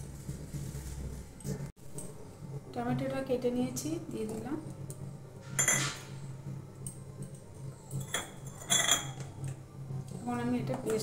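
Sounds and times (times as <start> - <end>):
metal bowl clinking on stone: 5.6 - 6.1, 6.8 - 9.5.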